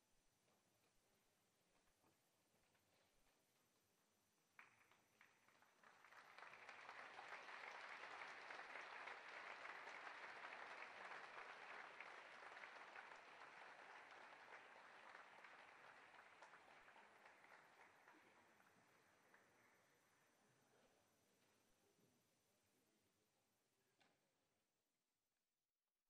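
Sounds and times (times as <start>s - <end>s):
audience applause: 4.6s - 19.8s.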